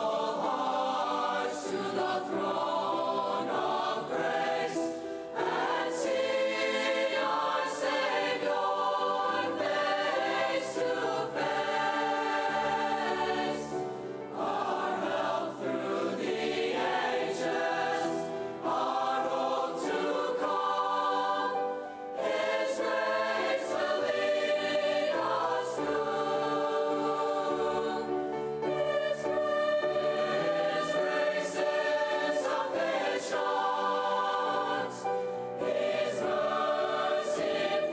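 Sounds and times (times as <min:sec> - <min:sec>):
grand piano accompaniment: 0:00.0 - 0:37.9
young choir singing: 0:00.0 - 0:37.9.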